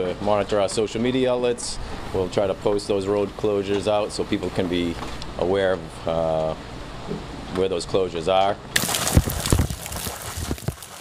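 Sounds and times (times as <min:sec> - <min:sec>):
rainwater gushing from downspout: 0:08.8 - 0:11.0.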